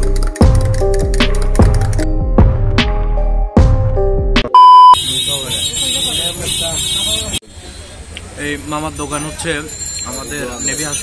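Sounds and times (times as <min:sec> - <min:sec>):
road traffic noise: 0:05.0 - 0:11.0.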